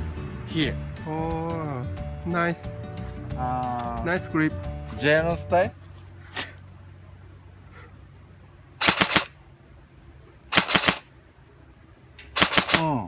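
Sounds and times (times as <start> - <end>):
airsoft gun firing rapid bursts: 8.8 - 9.3, 10.5 - 11.1, 12.4 - 13.0
single gunshot: 8.8 - 9.3, 10.5 - 11.1, 12.3 - 13.0.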